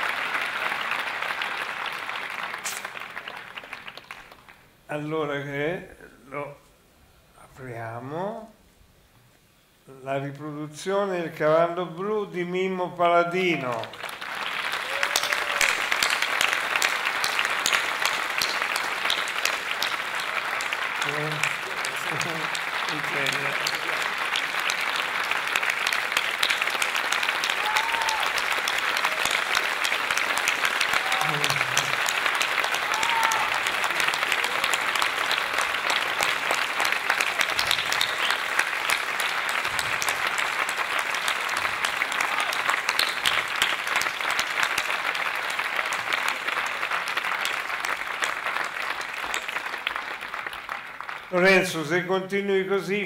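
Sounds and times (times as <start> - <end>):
large audience applauding: 0.0 - 4.8, 13.3 - 53.0.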